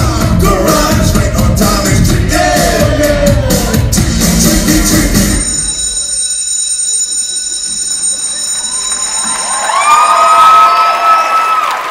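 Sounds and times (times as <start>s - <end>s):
dance music: 0.0s - 10.3s
high ringing tone: 5.2s - 10.8s
audience cheering and screaming: 8.4s - 11.9s.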